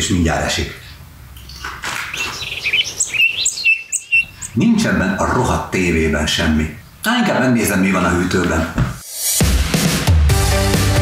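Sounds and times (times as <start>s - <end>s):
small birds chirping: 0.6s - 5.6s.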